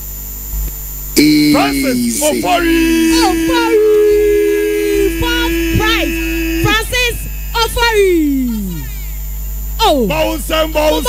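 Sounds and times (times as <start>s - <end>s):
short voice calls: 1.2s - 9.1s
long steady tone: 1.2s - 9.8s.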